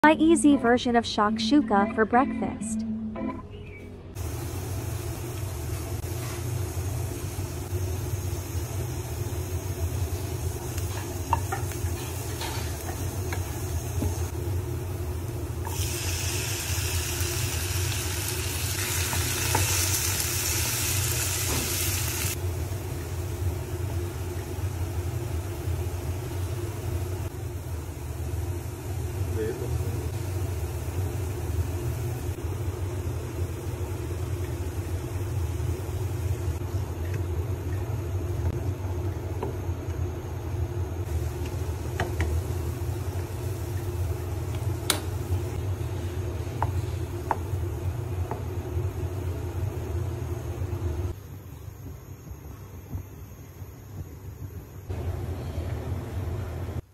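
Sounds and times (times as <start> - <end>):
constant low hum: 0.0 - 56.9
vegetables sizzling in oil: 4.2 - 36.6.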